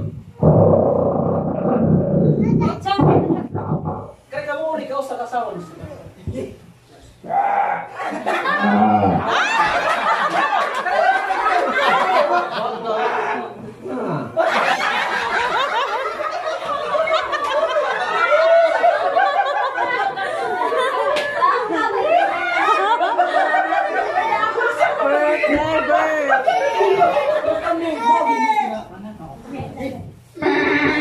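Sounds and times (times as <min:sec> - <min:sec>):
falling vocal slide: 0:00.0 - 0:04.2, 0:30.4 - 0:31.0
beatboxing buzzing bass: 0:00.0 - 0:04.3, 0:08.6 - 0:09.3, 0:30.4 - 0:31.0
people laughing: 0:07.9 - 0:28.2, 0:30.4 - 0:31.0.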